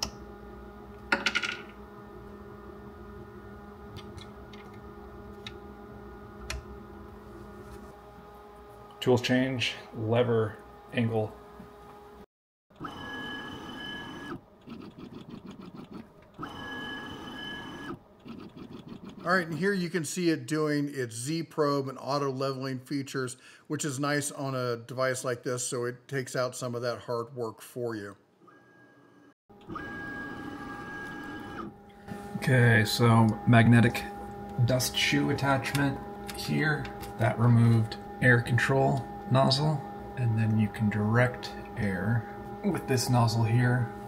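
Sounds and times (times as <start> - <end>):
cnc stepper motors whining: 29.6 - 44.0.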